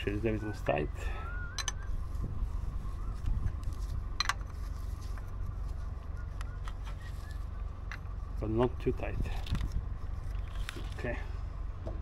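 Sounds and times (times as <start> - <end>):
steady low rumble: 0.0 - 12.0
metallic wrench clinks: 1.6 - 1.8.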